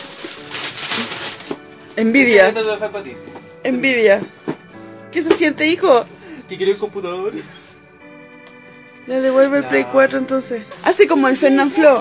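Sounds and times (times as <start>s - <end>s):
paper and cardboard rustling: 0.0s - 4.8s
faint background music: 0.0s - 12.0s.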